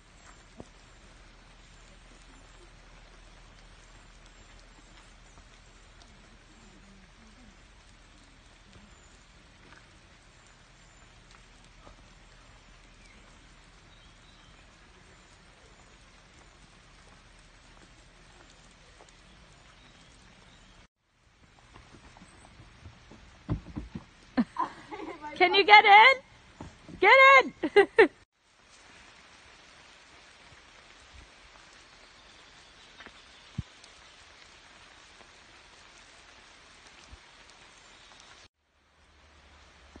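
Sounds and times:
light rain pattering: 0:00.0 - 0:40.0.

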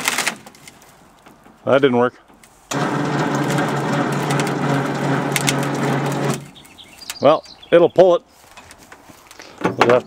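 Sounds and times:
winch motor running: 0:02.7 - 0:06.9.

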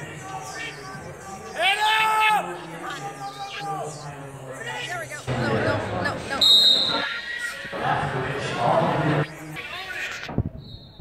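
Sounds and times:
people shouting: 0:00.5 - 0:04.0
referee's whistle blast: 0:06.4 - 0:07.1.

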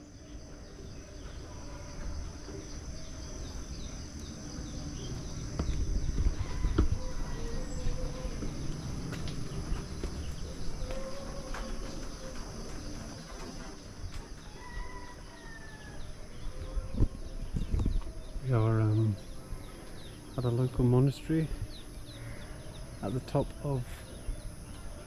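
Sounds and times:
cicadas and crickets chorus: 0:00.0 - 0:25.0.

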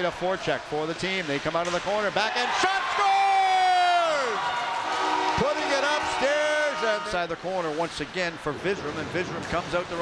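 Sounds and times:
announcer shouting: 0:05.1 - 0:07.3.

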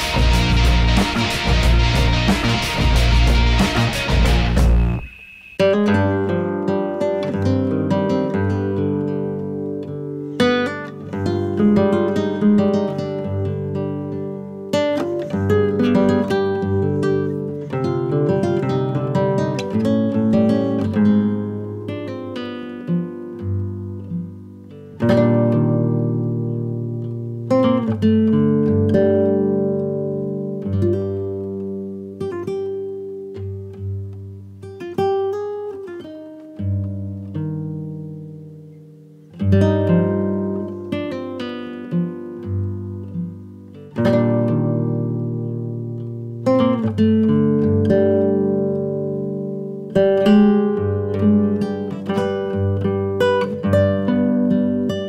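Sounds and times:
acoustic guitar: 0:00.0 - 0:55.0.

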